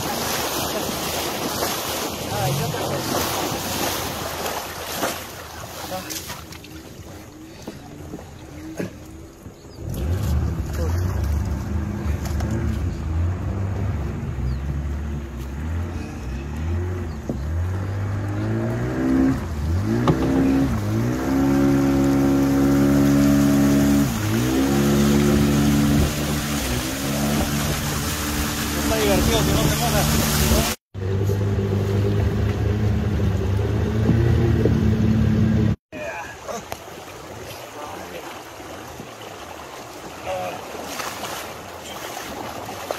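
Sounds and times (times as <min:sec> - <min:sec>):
outboard motor revving: 0:00.0 - 0:42.9.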